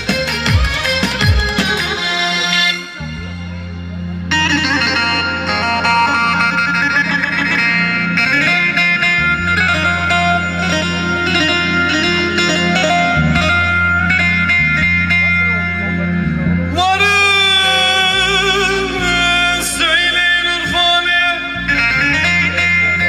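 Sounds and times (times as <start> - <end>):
keyboard folk dance tune: 0.0 - 23.0.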